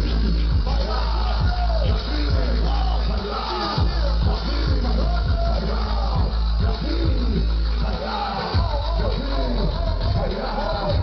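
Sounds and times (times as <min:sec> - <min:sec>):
heavy bass line: 0:00.0 - 0:11.0
loud live hip hop music: 0:00.0 - 0:11.0.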